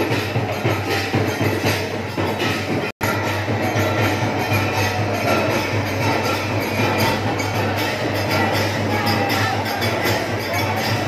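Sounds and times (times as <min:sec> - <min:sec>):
drum: 0:00.0 - 0:11.0
hand cymbals: 0:00.0 - 0:11.0.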